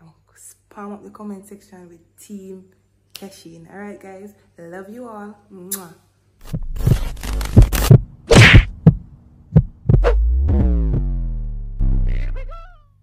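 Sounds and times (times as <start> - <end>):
sharp hits over deep bass: 6.5 - 9.0, 9.9 - 12.5
long falling tone: 10.2 - 12.9.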